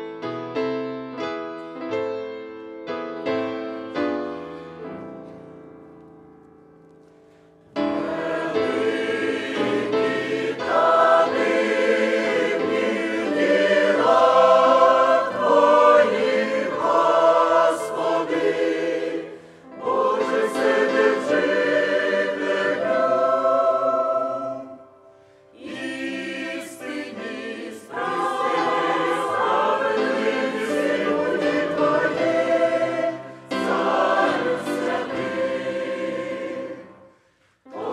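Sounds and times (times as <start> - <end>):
choir singing a hymn: 7.7 - 37.9.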